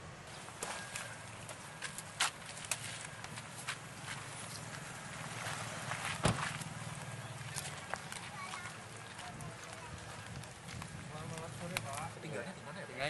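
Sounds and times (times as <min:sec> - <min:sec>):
footsteps: 0:00.5 - 0:12.2
car door thudding shut: 0:06.2 - 0:06.6.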